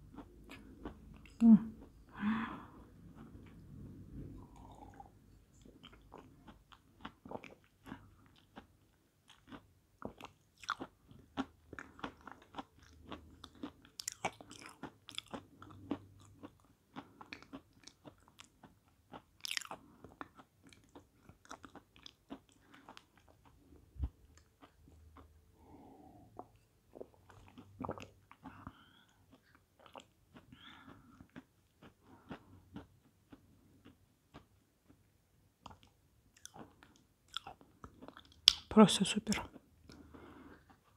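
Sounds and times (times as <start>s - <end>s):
chewing with dry crunches: 0.0s - 2.0s, 4.4s - 38.7s.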